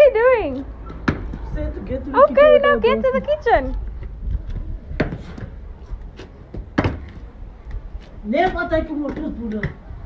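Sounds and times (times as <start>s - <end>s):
hands slapping on brick paving: 3.6s - 9.9s.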